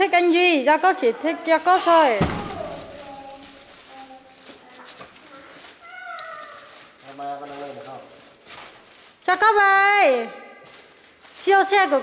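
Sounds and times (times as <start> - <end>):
high-pitched voice calling: 5.8 - 6.8.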